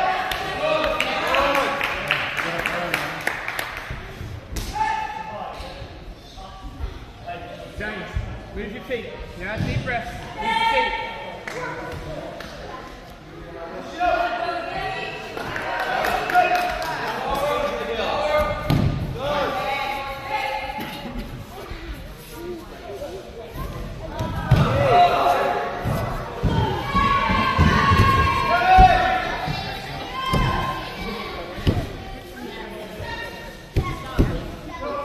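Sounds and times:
voices echoing in hall: 0:00.0 - 0:35.0.

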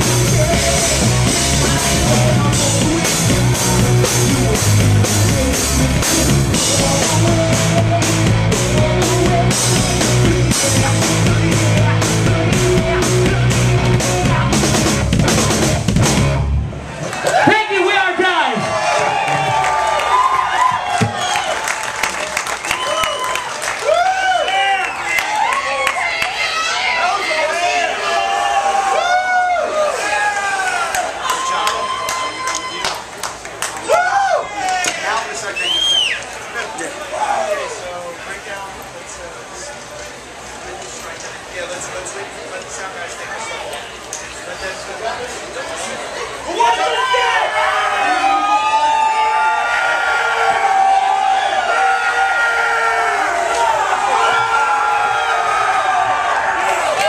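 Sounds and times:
concert crowd cheering and shouting: 0:00.0 - 0:33.2, 0:33.8 - 0:38.0, 0:46.1 - 0:57.0.

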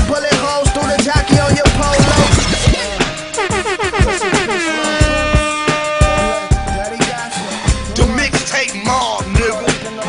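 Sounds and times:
horn-like synth notes: 0:00.8 - 0:08.1.

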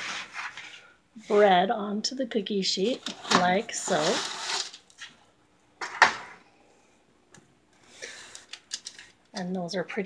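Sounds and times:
paper scraping: 0:00.0 - 0:01.5, 0:03.0 - 0:05.0.

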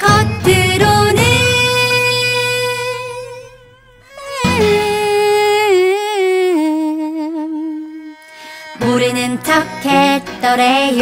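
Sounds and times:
band playing: 0:00.0 - 0:05.5
person singing long wavering note: 0:00.0 - 0:08.2.

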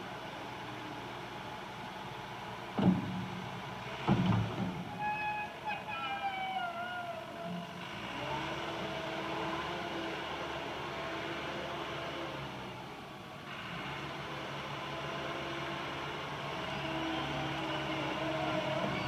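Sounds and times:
diesel engine with whine: 0:00.0 - 0:19.0.

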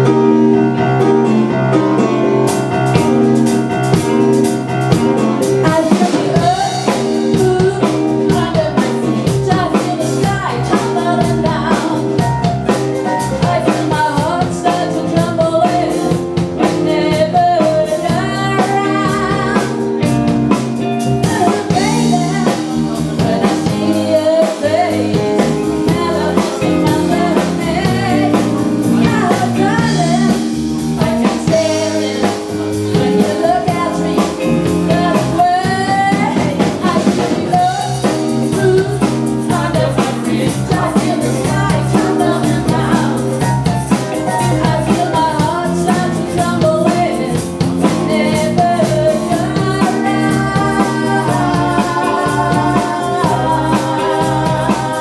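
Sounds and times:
live rock band playing: 0:00.0 - 0:55.0
woman singing lead: 0:00.0 - 0:55.0.

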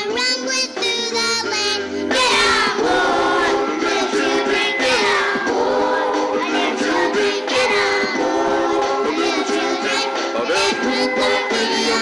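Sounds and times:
children singing together: 0:00.6 - 0:12.0.

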